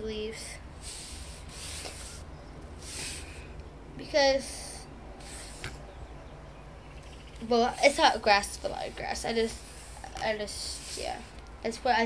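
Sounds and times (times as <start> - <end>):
paintbrush scratchy rubs: 0.8 - 3.4, 5.2 - 5.8, 8.5 - 11.4.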